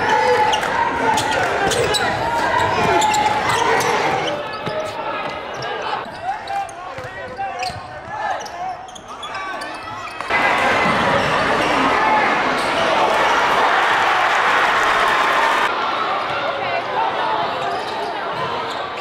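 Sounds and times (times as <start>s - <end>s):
crowd talking and shouting: 0.0s - 19.0s.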